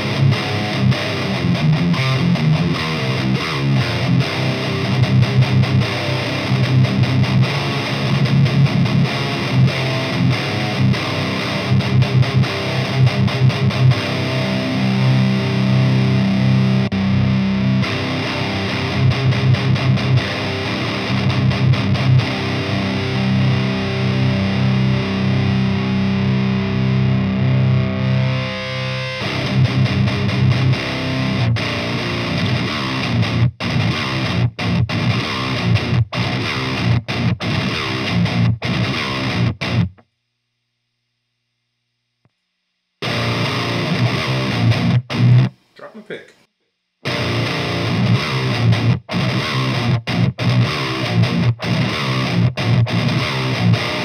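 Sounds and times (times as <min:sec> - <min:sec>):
distorted electric guitar riffing: 0:00.0 - 0:40.0, 0:43.0 - 0:54.0.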